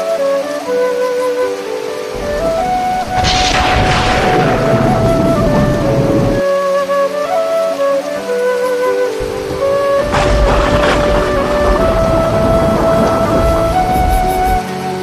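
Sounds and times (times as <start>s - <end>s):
heavy rain: 0.0s - 15.0s
slow flute melody: 0.0s - 15.0s
low rumble: 2.2s - 6.4s.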